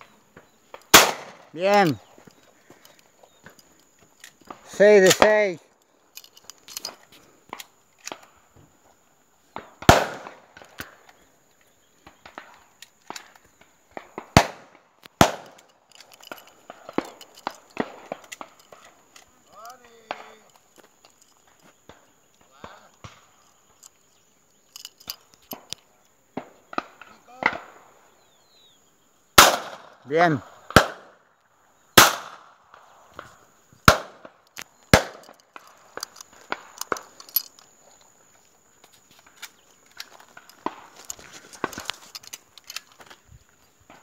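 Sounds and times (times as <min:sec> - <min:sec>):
shotgun shots: 0:00.9 - 0:02.0, 0:09.8 - 0:10.6, 0:14.2 - 0:15.6, 0:29.4 - 0:31.2, 0:32.0 - 0:32.8, 0:33.8 - 0:35.4.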